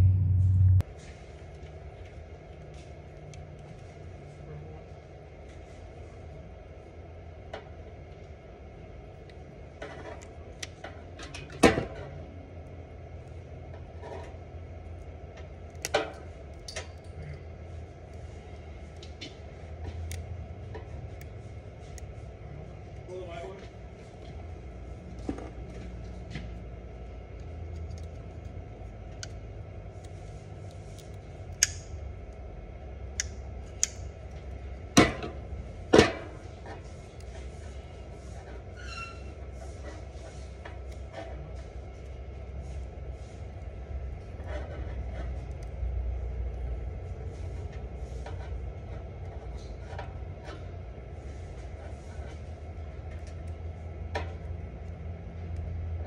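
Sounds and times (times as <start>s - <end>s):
low steady hum: 0.0s - 56.0s.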